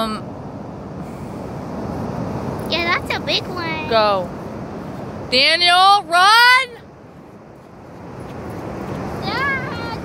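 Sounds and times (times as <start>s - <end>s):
waves breaking on beach: 0.0s - 10.0s.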